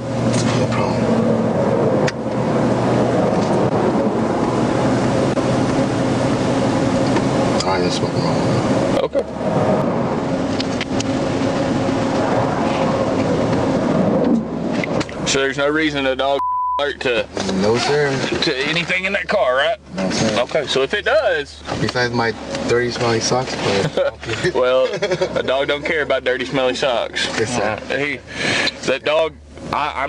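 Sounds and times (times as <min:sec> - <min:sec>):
passing highway traffic: 0:00.0 - 0:16.4, 0:17.0 - 0:30.0
vehicle engine idling: 0:00.0 - 0:30.0.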